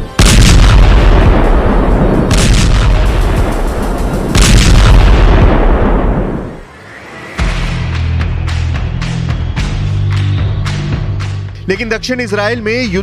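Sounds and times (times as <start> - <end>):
sharp explosion blasts: 0.0 - 6.6
deep explosion rumble: 0.2 - 6.6.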